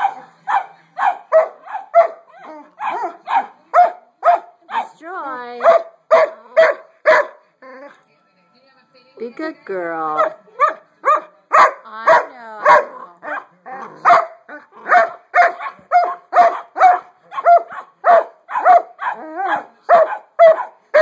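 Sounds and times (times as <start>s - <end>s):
dog barking: 0.0s - 5.0s, 5.6s - 7.4s, 10.2s - 21.0s.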